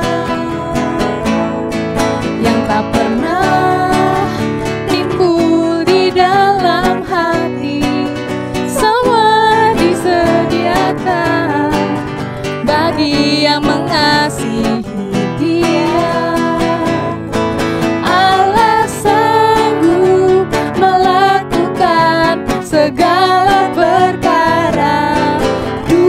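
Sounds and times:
women singing together: 0.0 - 1.6, 2.4 - 12.0, 12.6 - 17.2, 17.8 - 26.0
guitar accompaniment: 0.0 - 26.0.

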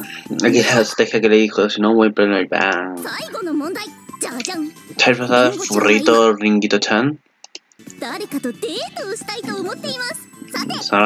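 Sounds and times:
light background music: 0.0 - 1.3, 2.9 - 6.5, 7.8 - 11.0
high-pitched female voice speaking: 0.4 - 1.0, 3.0 - 6.4, 8.0 - 11.0.

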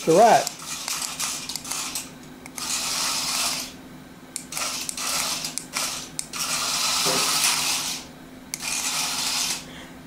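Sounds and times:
toy motor whirring: 0.4 - 3.8, 4.4 - 9.7.

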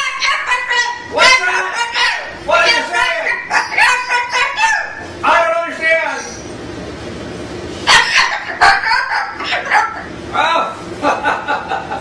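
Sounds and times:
cockatoo calling: 0.0 - 6.6, 7.8 - 10.6.

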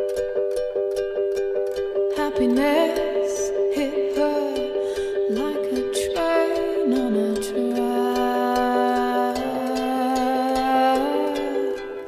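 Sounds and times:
gliding melody line: 0.0 - 12.0
plucked-string accompaniment: 0.0 - 12.0.

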